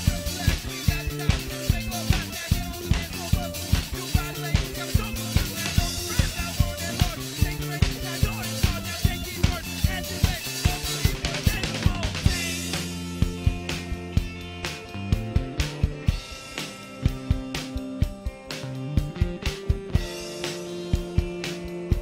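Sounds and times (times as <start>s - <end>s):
drum kit beat: 0.0s - 22.0s
electric bass: 0.0s - 22.0s
electric guitar notes: 0.0s - 22.0s.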